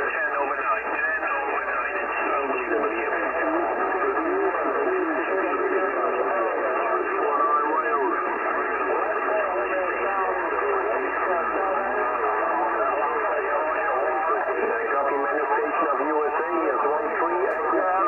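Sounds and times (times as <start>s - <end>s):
many voices over radio: 0.0s - 18.0s.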